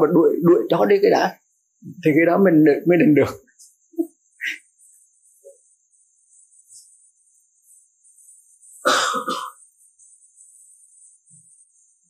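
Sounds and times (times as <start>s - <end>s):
person clearing throat coughing: 8.8s - 9.6s.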